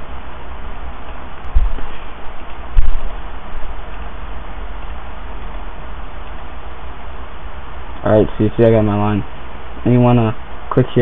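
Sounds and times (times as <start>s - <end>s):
microphone hiss: 0.0s - 11.0s
short low thumps: 1.5s - 2.0s, 2.7s - 3.7s.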